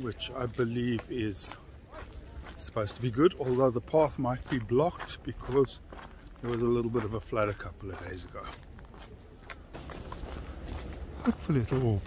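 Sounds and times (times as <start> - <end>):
footsteps on paved path: 0.0 - 12.0.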